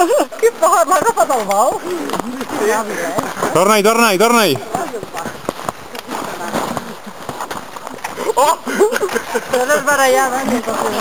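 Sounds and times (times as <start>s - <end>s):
footsteps crunching in snow: 0.1s - 11.0s.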